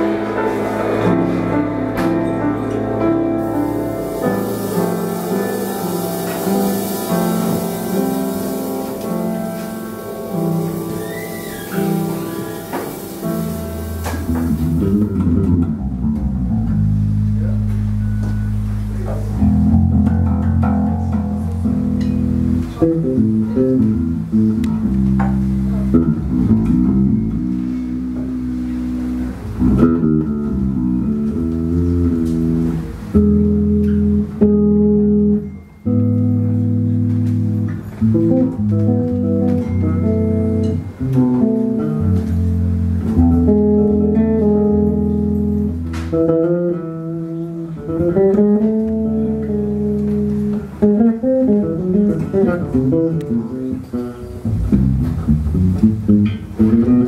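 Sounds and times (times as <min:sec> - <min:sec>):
electric bass guitar: 0:00.0 - 0:57.0.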